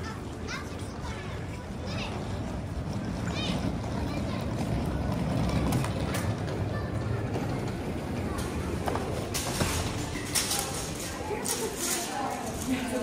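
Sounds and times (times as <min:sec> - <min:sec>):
indistinct background voices: 0:00.0 - 0:13.0.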